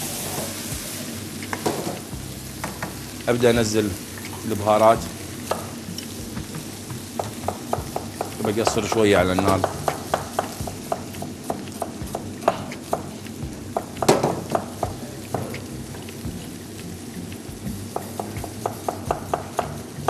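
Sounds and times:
chicken frying in oil: 0.0s - 20.0s.

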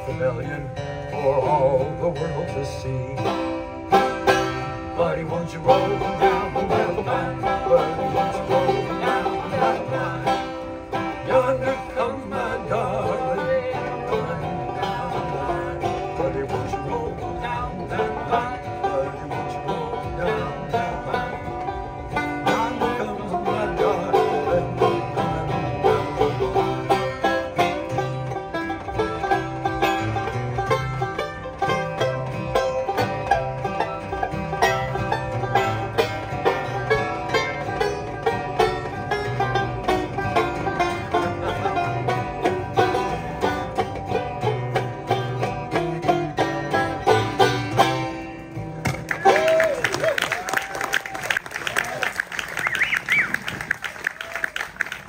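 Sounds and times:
acoustic guitar strumming: 0.0s - 49.8s
banjo picking: 0.0s - 55.0s.

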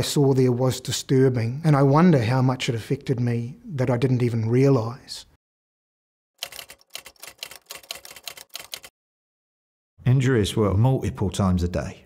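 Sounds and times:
typewriter key clacks: 6.4s - 8.9s.

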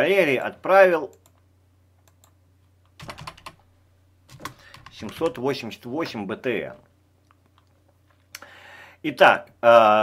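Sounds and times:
keyboard keystrokes: 3.0s - 3.6s, 4.3s - 5.4s.

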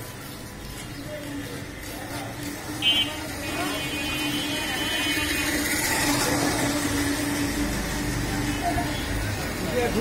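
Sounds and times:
street traffic engine hum: 0.0s - 10.0s.

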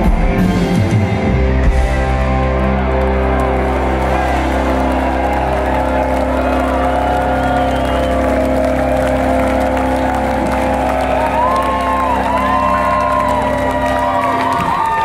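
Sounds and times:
rock band sustained chord: 0.0s - 14.9s
bending electric guitar notes: 0.0s - 15.0s
crowd cheering: 0.0s - 15.0s.

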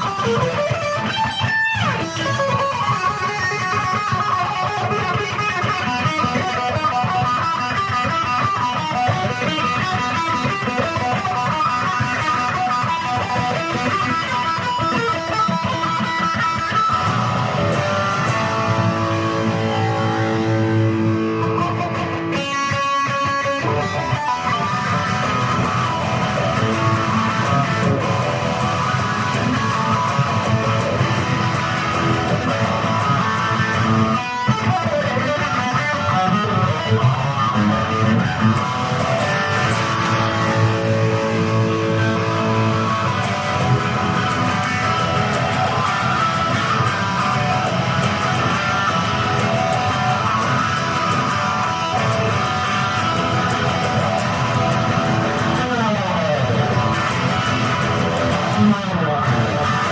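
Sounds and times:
electric guitar playing riffs: 0.0s - 59.9s.

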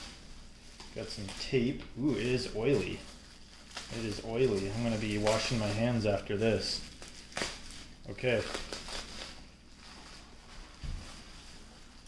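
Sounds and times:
bubble wrap handling: 0.0s - 12.0s.

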